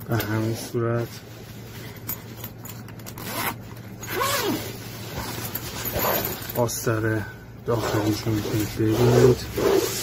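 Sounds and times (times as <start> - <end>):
zipper pulled open: 3.0 - 6.4, 7.8 - 10.0.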